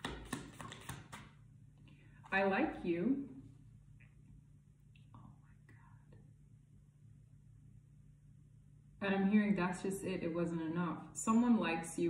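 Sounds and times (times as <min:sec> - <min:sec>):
faint room hum: 0:00.0 - 0:12.0
person whispering: 0:05.1 - 0:06.3.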